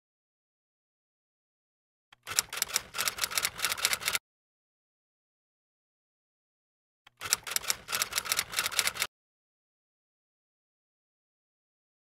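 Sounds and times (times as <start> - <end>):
typewriter keystrokes: 2.2 - 4.2, 7.2 - 9.1.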